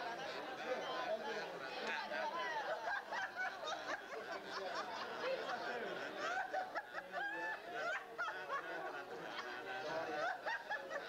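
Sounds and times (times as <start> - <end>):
people laughing and calling out: 0.0 - 11.0.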